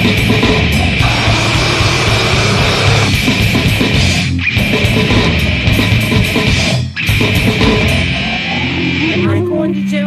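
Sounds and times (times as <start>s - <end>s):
heavy metal music: 0.0s - 10.0s.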